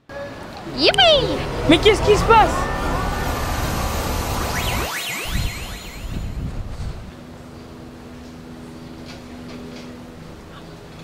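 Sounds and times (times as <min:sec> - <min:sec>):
magic rushing whoosh: 0:02.3 - 0:07.1
whistling pitch sweeps: 0:02.3 - 0:07.1.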